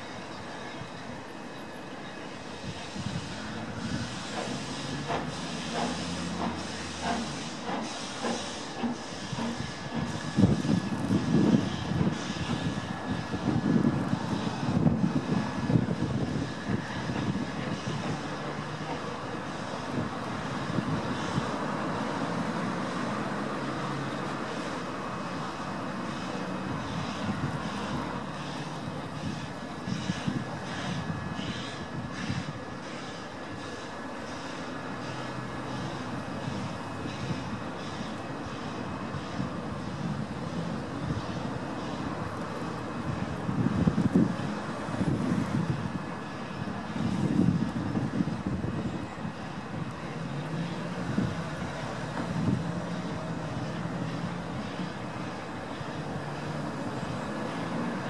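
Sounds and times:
steam locomotive chuffing: 0.0s - 58.0s
train rumble: 0.0s - 58.0s.

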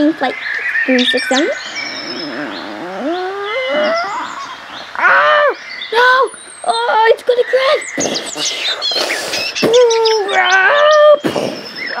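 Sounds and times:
child's high wordless cry: 2.3s - 6.3s, 9.6s - 11.2s.

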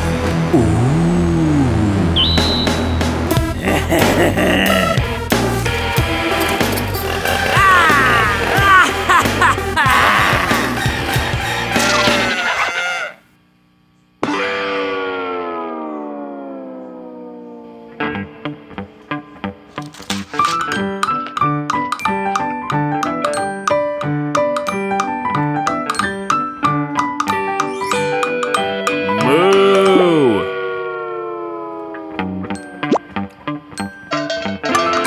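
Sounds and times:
cartoon cow mooing: 7.2s - 9.0s, 29.1s - 32.6s.

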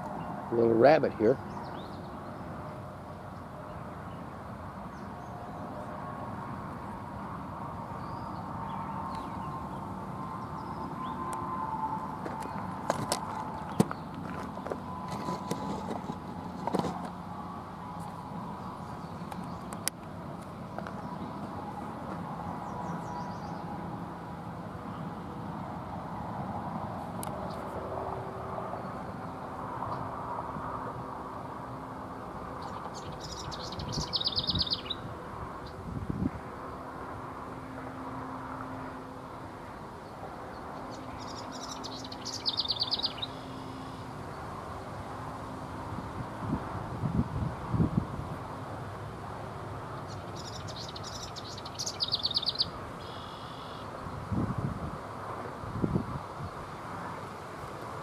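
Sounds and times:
birds chirping: 0.1s - 5.9s, 7.9s - 16.2s, 22.5s - 23.8s, 32.5s - 35.8s, 40.0s - 44.4s, 50.0s - 53.9s
rapid high-pitched bird call: 32.9s - 35.0s, 50.1s - 53.9s.

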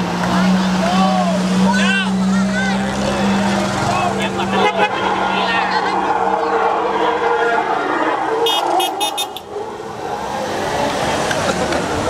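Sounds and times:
car engines driving slowly past: 0.0s - 12.0s
street noise: 0.0s - 12.0s
car horn short high beeps: 8.4s - 9.5s.

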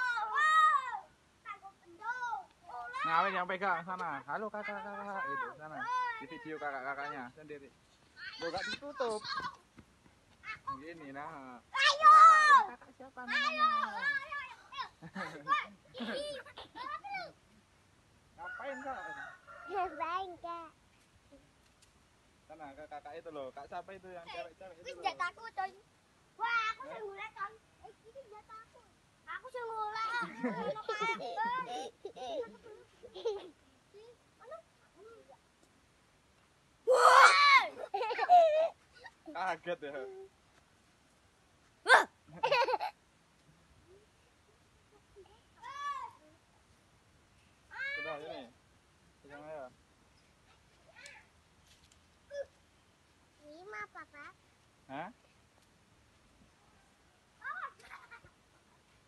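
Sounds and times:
rooster crowing: 18.4s - 20.1s
child calling out: 36.9s - 37.7s, 41.9s - 42.1s.

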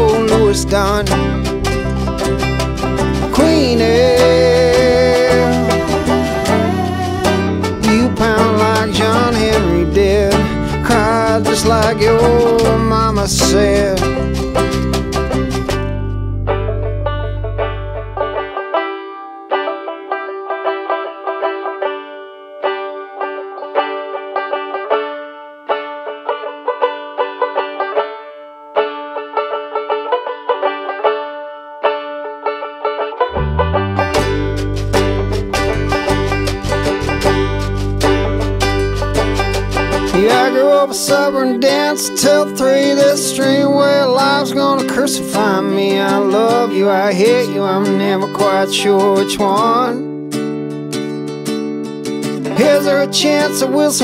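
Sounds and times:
bass and full band: 0.0s - 18.6s, 33.3s - 40.8s
banjo picking: 0.0s - 54.0s.

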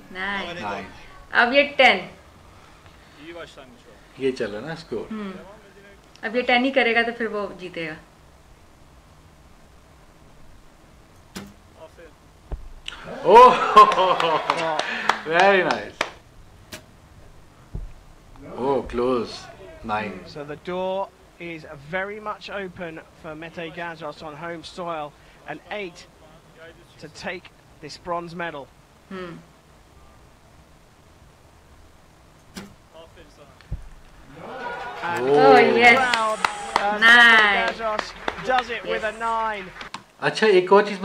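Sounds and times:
faint background hiss: 0.0s - 41.0s
arrow hitting knock: 11.3s - 11.6s, 12.5s - 12.9s, 17.7s - 18.0s, 32.5s - 32.8s, 33.7s - 34.2s
bow string snap: 11.3s - 11.6s, 32.4s - 32.8s.

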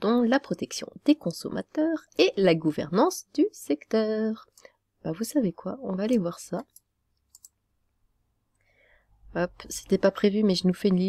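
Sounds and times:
computer mouse clicks: 6.0s - 7.6s.

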